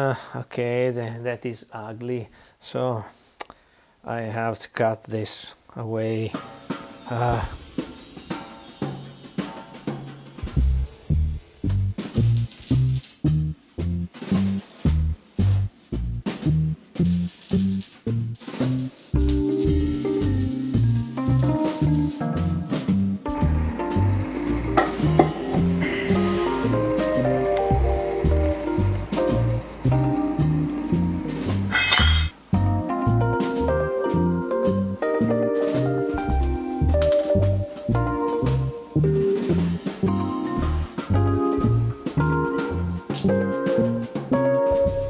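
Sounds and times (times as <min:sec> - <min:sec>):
higher melody: 0:06.3 - 0:13.8, 0:18.9 - 0:45.0
bass line with drums: 0:10.4 - 0:31.8, 0:32.4 - 0:45.0.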